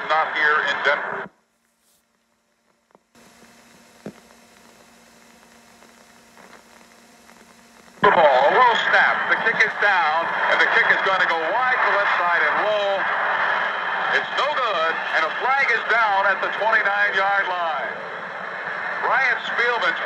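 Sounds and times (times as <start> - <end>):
faint radio hum: 0.0 - 20.0
loud overlapping voices: 8.0 - 20.0.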